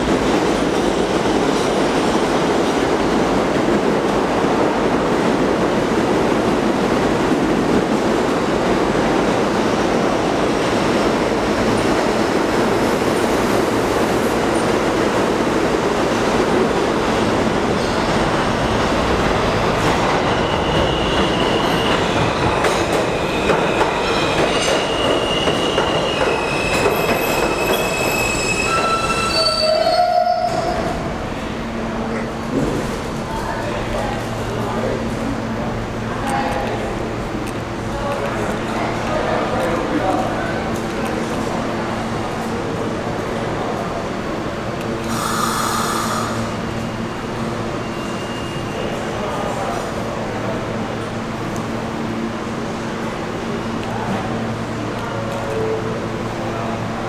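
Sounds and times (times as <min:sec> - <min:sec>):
train wheels rumbling on rails: 0:00.0 - 0:57.0
train wheels squealing: 0:20.2 - 0:30.9, 0:47.7 - 0:49.1.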